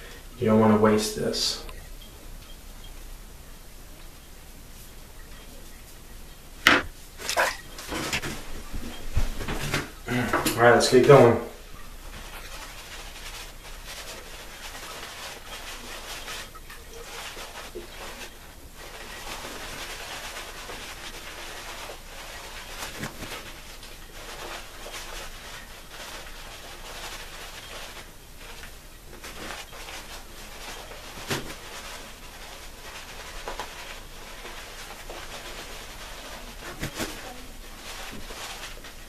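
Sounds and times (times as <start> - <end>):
shaving brush rubbing lather: 11.9 - 39.0.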